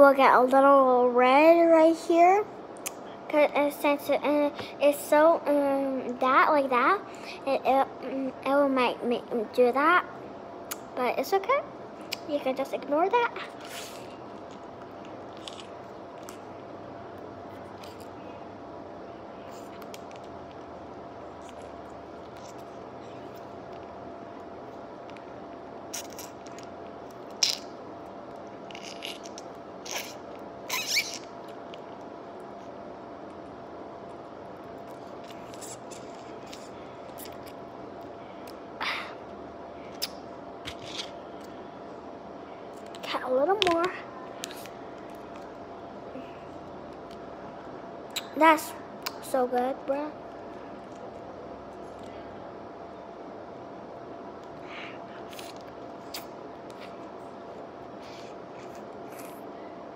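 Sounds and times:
faint room hiss with hum: 0.0s - 59.9s
clicks and squelches of sucking pouch: 39.9s - 41.6s.

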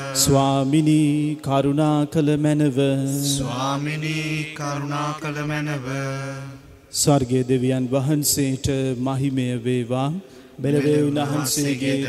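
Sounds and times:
man chanting prayer: 0.0s - 12.0s.

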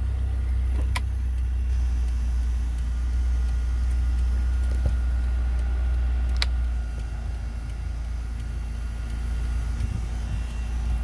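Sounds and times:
car engine idling: 0.0s - 11.0s
sharp click: 6.3s - 7.1s.

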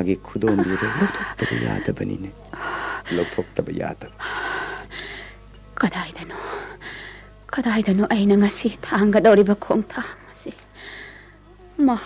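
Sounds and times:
person speaking: 0.0s - 4.1s.

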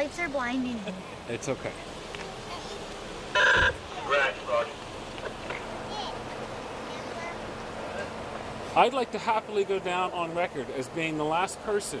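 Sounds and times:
vehicle horn beep: 3.4s - 3.8s.

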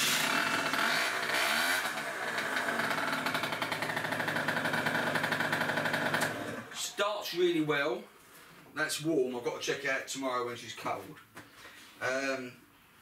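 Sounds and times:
scooter engine idling: 0.0s - 6.7s.

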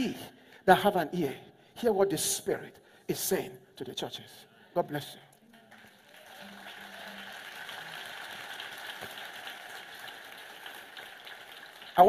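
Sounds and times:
congregation applauding: 5.3s - 12.0s.

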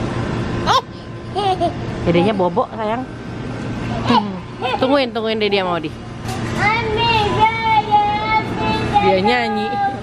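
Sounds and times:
toddler singing wordlessly: 6.6s - 10.0s.

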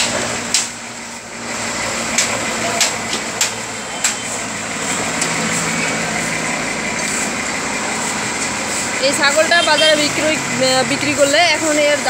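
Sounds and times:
distant road traffic: 0.0s - 12.0s.

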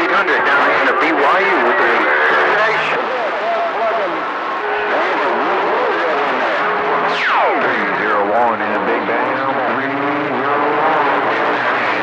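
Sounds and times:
garbled radio voices: 0.0s - 12.0s
radio static hiss: 0.0s - 12.0s.

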